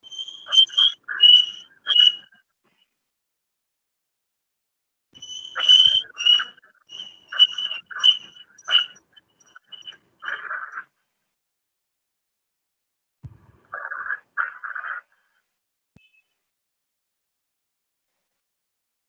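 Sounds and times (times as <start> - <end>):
animal calls with rasping edge: 0.0 - 2.4, 5.2 - 10.9, 13.7 - 15.2.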